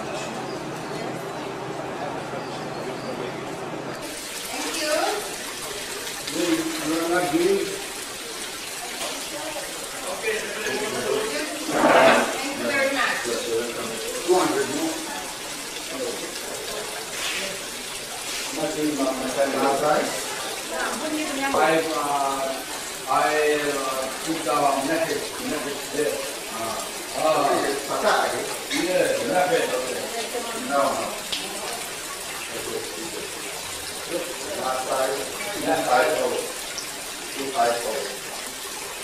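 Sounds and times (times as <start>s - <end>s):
people talking: 0.0s - 5.4s, 6.2s - 7.8s, 8.7s - 17.7s, 18.5s - 31.9s, 34.1s - 36.5s
running water rushing: 0.0s - 39.0s.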